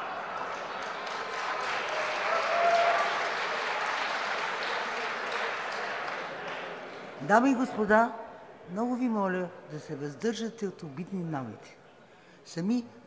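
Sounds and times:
applause in a large chamber: 0.0s - 7.5s.

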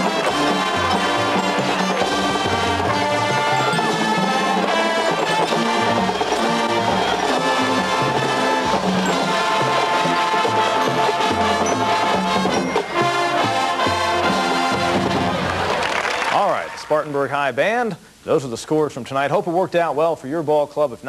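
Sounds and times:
marching band playing: 0.0s - 16.4s.

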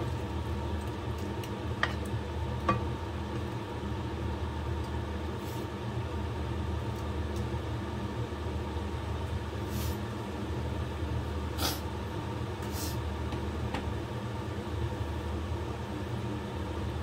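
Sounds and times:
kitchen stove humming: 0.0s - 17.0s
stir-fry hissing in a wok: 5.2s - 6.0s, 7.9s - 10.5s, 11.1s - 13.2s.

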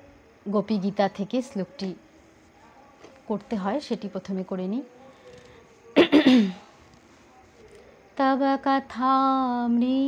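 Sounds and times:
woman clearing her throat: 6.0s - 6.6s.

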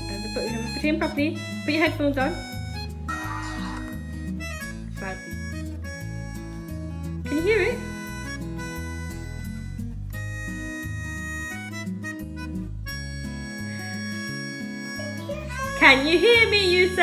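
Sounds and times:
reedy background music: 0.0s - 17.0s.

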